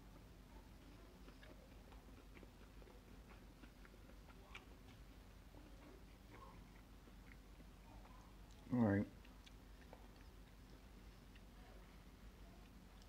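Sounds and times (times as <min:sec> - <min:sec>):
person chewing food: 0:00.1 - 0:13.0.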